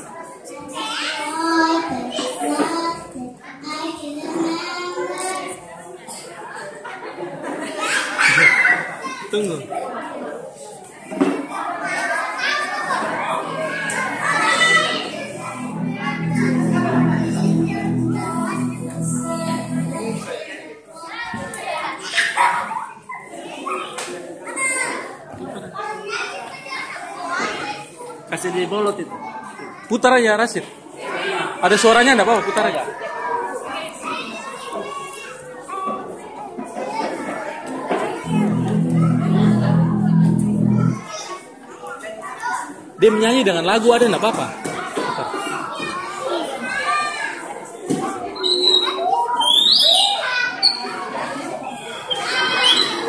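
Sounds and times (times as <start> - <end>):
children chattering and calling: 12.8 - 20.3.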